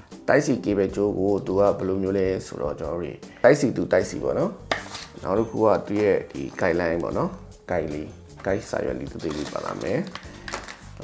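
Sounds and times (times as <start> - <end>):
person talking: 5.2 - 10.2.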